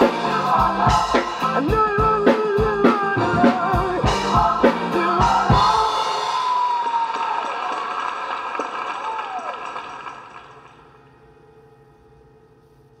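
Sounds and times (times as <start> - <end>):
drum hits: 0.0 - 6.6
faint hum: 7.6 - 13.0.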